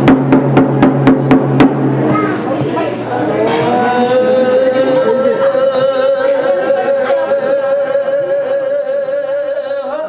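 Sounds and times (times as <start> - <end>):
frame drum beating: 0.0 - 3.8
man singing low held notes: 3.1 - 10.0.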